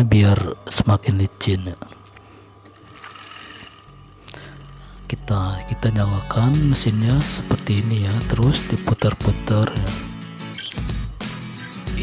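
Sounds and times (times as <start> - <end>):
sewing machine motor humming: 2.6 - 5.0.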